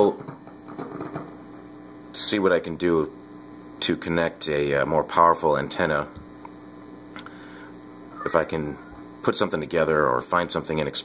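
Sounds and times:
radio receiver hum and hiss: 0.0s - 11.0s.

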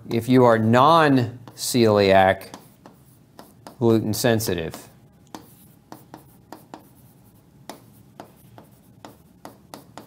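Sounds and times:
pen writing on paper: 5.3s - 10.0s.

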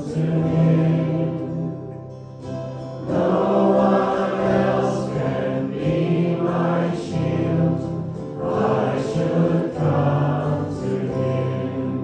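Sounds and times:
congregation singing: 0.0s - 12.0s
musical accompaniment: 0.0s - 12.0s.

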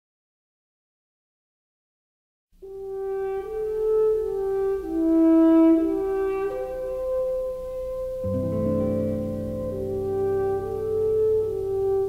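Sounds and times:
french horn slow melody: 2.6s - 12.0s.

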